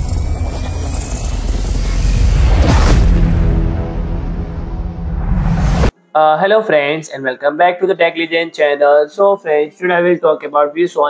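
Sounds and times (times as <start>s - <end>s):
deep bass rumble: 0.0s - 5.9s
faint rising tone: 0.0s - 6.0s.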